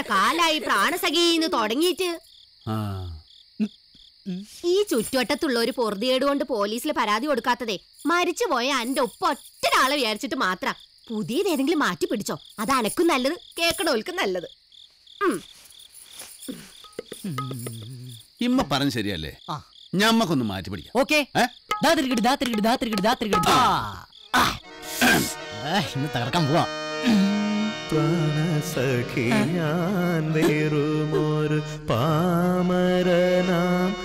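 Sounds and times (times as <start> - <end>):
crickets chirping: 0.0 - 34.0
man murmuring: 2.7 - 3.7, 16.5 - 18.3, 23.4 - 27.4, 30.4 - 31.3.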